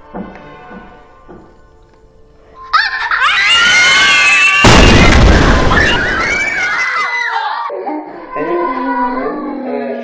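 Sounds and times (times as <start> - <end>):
girls screaming: 2.7 - 7.7
loud crash: 4.6 - 6.8.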